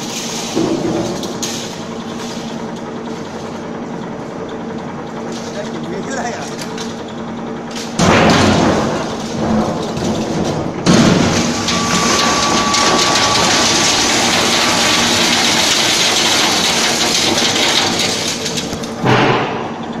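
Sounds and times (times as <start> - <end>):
metal shredder shredding buckets: 0.0 - 3.6, 7.7 - 20.0.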